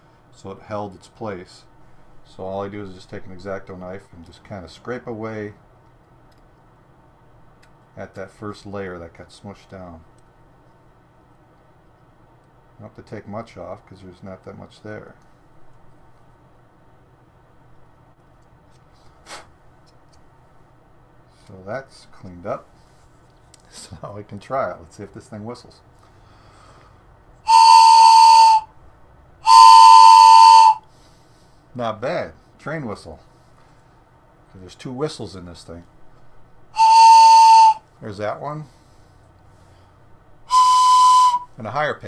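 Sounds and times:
plastic train whistle blast: 27.4s - 28.7s, 29.4s - 30.9s, 36.7s - 37.8s, 40.5s - 41.5s.

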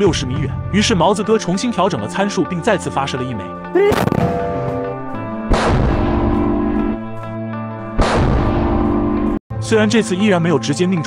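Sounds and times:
heavy mortar blasts: 3.9s - 6.7s, 8.0s - 8.8s.

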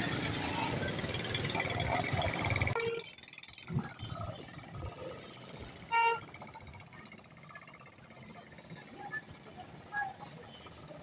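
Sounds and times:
faint street noise: 0.0s - 11.0s.

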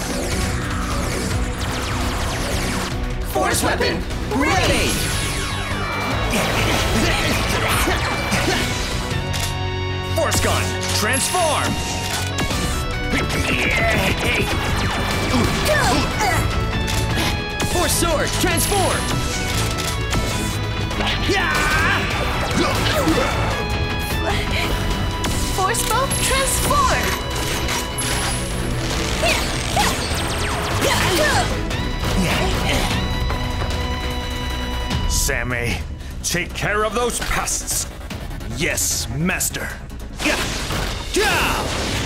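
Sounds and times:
dramatic action music: 0.0s - 42.0s.

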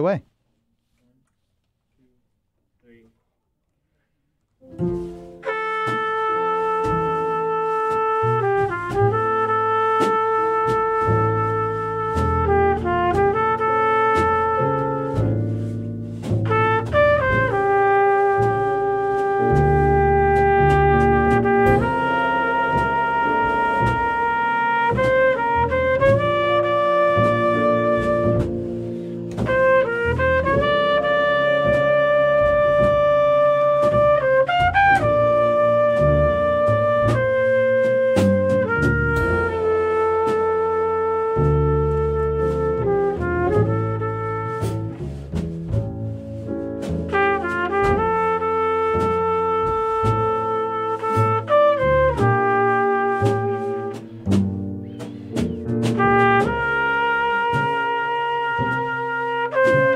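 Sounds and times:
piano: 4.6s - 59.9s
upright bass: 4.7s - 59.9s
trumpet and saxophone melody: 5.0s - 59.9s.

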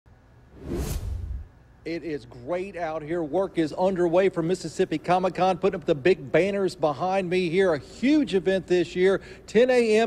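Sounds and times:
whoosh sound effect: 0.5s - 1.5s
low rumble: 0.5s - 1.6s.

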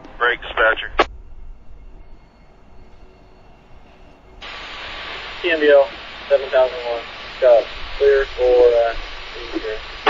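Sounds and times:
radio hiss: 0.0s - 1.1s, 4.4s - 10.0s
radio transmission: 0.0s - 1.1s, 4.4s - 10.0s.

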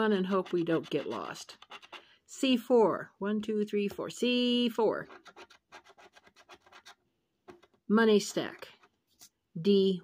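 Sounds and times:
scratching lottery ticket: 0.0s - 2.1s, 4.9s - 7.0s.

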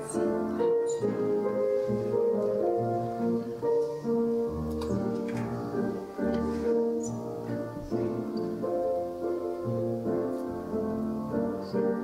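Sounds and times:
keyboard playing slow melody: 0.0s - 12.0s.

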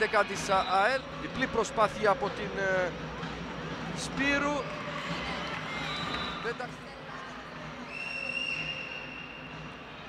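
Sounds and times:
crowd noise in a hall: 0.0s - 10.0s
high whistle: 5.7s - 6.5s, 7.9s - 9.7s.

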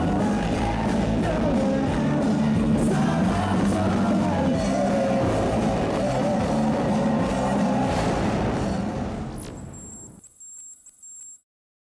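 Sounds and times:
rock music: 0.0s - 9.4s.

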